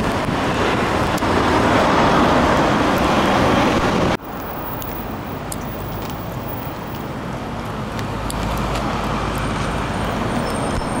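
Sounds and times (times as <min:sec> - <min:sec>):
bus engine rumble: 0:00.0 - 0:11.0
street traffic: 0:00.0 - 0:11.0.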